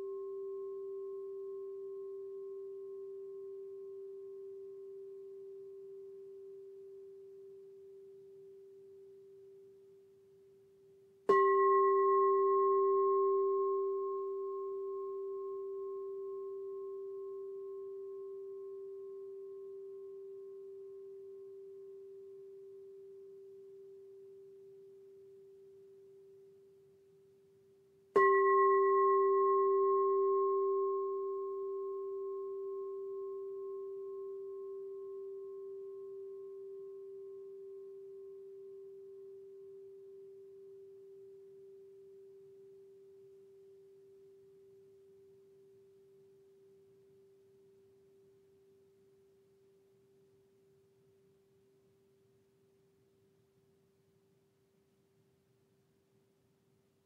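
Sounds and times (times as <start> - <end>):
singing bowl ringing: 0.0 - 9.8, 11.3 - 26.8, 28.1 - 48.2
singing bowl struck: 11.3 - 25.6, 28.2 - 42.2.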